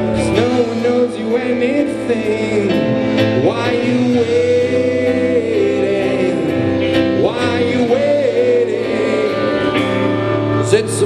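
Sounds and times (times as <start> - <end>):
live band playing: 0.0 - 11.0
person singing: 0.0 - 11.0.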